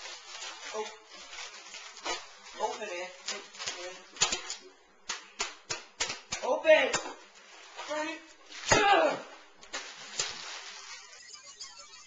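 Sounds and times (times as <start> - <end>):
plastic packet crinkling: 0.0 - 4.6, 9.7 - 11.3.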